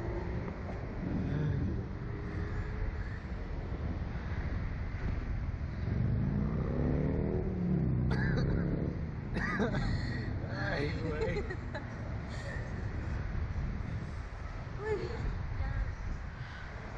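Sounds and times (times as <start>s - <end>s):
wind rushing over microphone: 0.0s - 16.9s
riders' voices: 9.8s - 13.2s, 13.8s - 16.9s.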